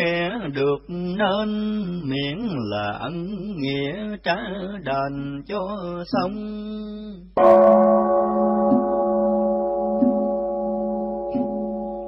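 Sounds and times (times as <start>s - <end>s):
temple bell ringing: 7.4s - 12.0s.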